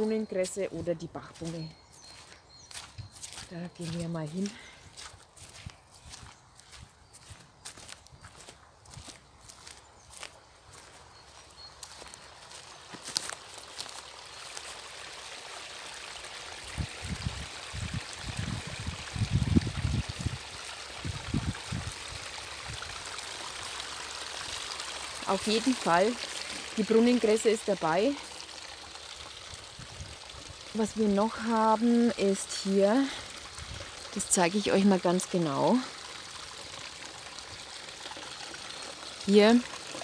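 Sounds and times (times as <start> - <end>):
stream trickling: 0.0 - 40.0
footsteps on grass: 0.4 - 15.3.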